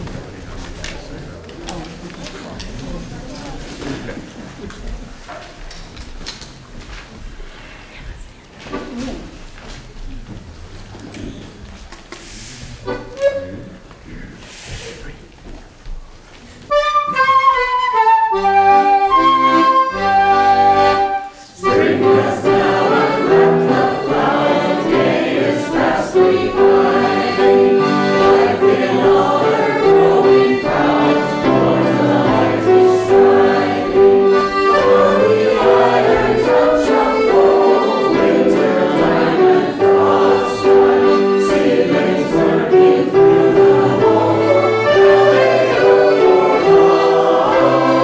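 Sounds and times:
mixed choir singing: 20.0s - 48.0s.

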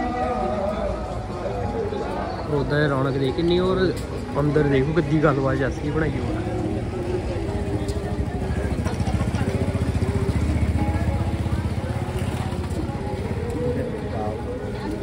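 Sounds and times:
people's voices: 0.0s - 15.0s
motorcycle engine passing by: 8.0s - 13.3s.

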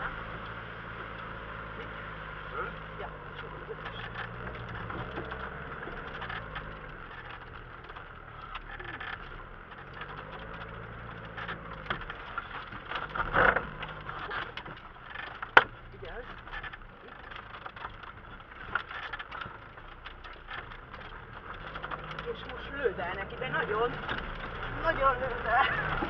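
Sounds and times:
engine running at low revs: 0.0s - 26.0s
knocks and rattles: 0.0s - 26.0s
vehicle bump: 0.0s - 26.0s.

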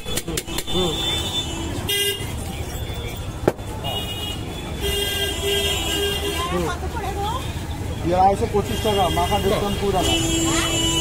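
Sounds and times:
traffic engine rumble: 0.0s - 11.0s
voices: 2.2s - 11.0s
vehicle horn: 8.6s - 11.0s.

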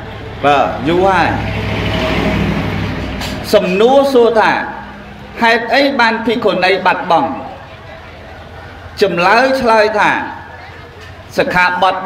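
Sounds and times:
man preaching into microphone: 0.4s - 1.5s, 3.4s - 7.6s, 9.0s - 10.6s, 11.3s - 12.0s.

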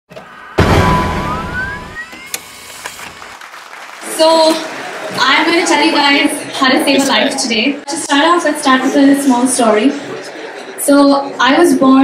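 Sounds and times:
loud hit: 0.2s - 2.3s
tone gliding upward: 0.6s - 2.4s.

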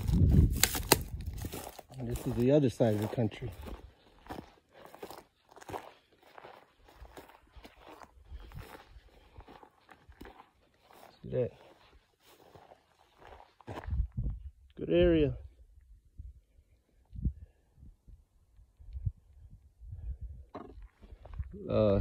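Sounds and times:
footsteps on dry grass: 0.0s - 14.6s, 20.7s - 21.6s.

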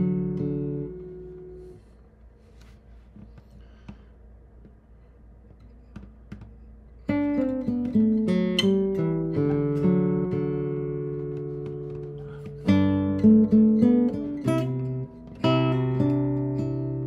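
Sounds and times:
nylon-string guitar chords: 0.0s - 1.9s, 7.1s - 17.0s
faint guitar string clicks: 5.5s - 6.7s.

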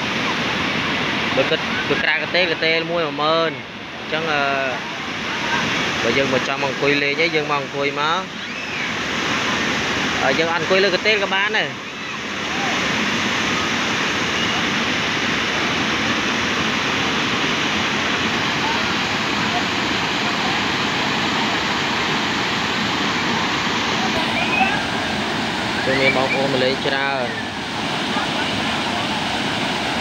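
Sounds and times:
waterfall rushing: 0.0s - 30.0s.

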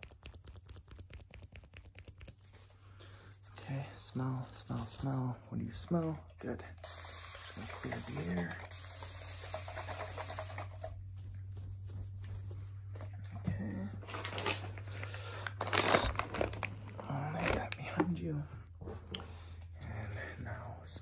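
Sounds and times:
plastic rustling: 14.0s - 18.1s.

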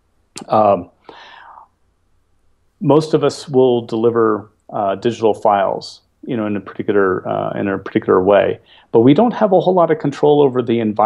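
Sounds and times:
man speaking: 0.4s - 1.6s, 2.8s - 11.0s
man breathing: 1.0s - 1.8s, 8.6s - 9.0s.

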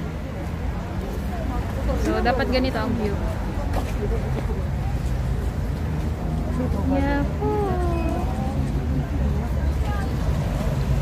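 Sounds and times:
low city rumble: 0.0s - 11.0s
passerby's voice: 0.0s - 11.0s.

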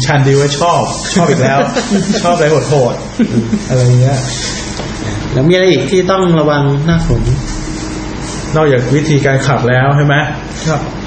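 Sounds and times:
man talking: 0.0s - 3.1s, 5.3s - 7.6s
steady hiss: 0.0s - 10.9s.

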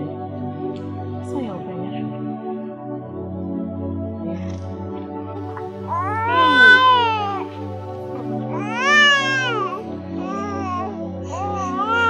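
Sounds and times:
background music: 0.0s - 12.0s
baby crying: 5.6s - 12.0s.

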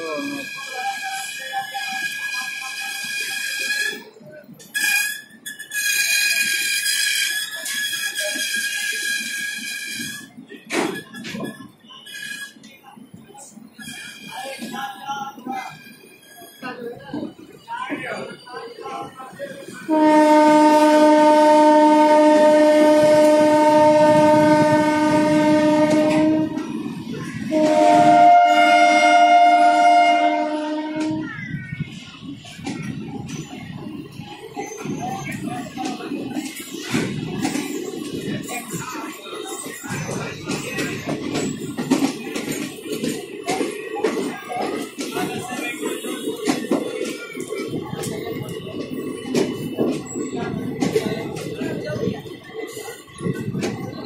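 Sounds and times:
train coaches rolling past: 0.0s - 54.0s
locomotive air horn blasts: 19.9s - 26.7s, 27.5s - 31.2s.

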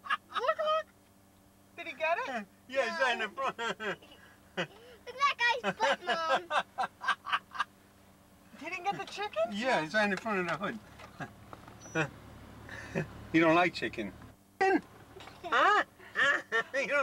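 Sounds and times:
indistinct talking in a car: 0.0s - 1.0s, 1.6s - 17.0s
faint steady low hum: 0.0s - 17.0s.

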